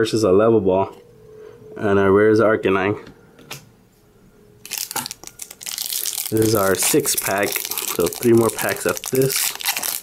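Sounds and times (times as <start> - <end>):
foil wrapper crinkling: 4.6 - 10.0.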